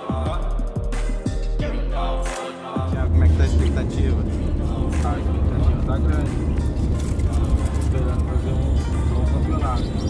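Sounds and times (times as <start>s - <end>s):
car road and engine rumble: 2.9s - 10.0s.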